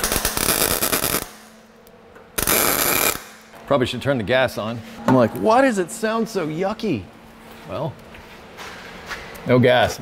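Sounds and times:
welder arc crackling and spattering: 0:00.0 - 0:01.5, 0:02.4 - 0:03.4.

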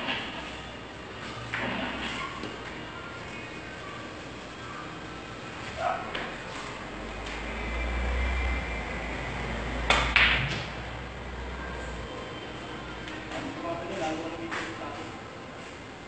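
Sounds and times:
pool balls clacking: 0:01.5 - 0:02.9, 0:09.8 - 0:10.8.

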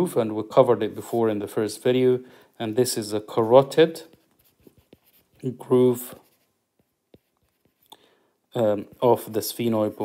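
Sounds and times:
stylus tapping on screen: 0:06.3 - 0:08.0.

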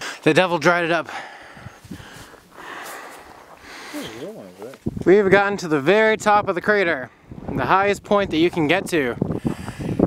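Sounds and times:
person breathing hard: 0:01.1 - 0:04.4, 0:09.3 - 0:10.0.

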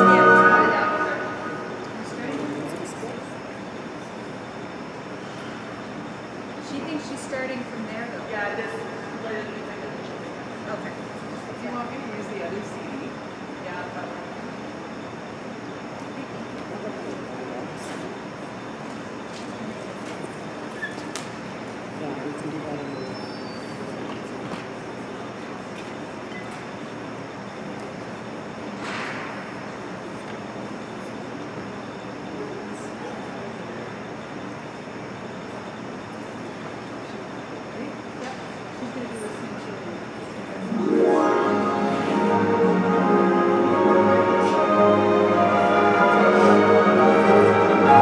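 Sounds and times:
murmur of indistinct voices: 0:00.0 - 0:03.9, 0:37.0 - 0:48.0
room noise: 0:00.0 - 0:13.2, 0:38.3 - 0:48.0.

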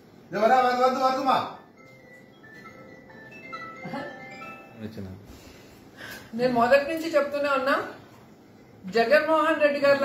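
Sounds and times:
simple electronic tune: 0:01.6 - 0:05.1.

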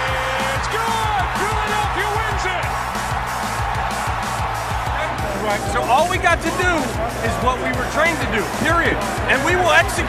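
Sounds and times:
man talking: 0:00.0 - 0:02.7, 0:04.9 - 0:10.0
music with low beat: 0:00.0 - 0:10.0
stadium crowd cheering: 0:00.0 - 0:10.0.

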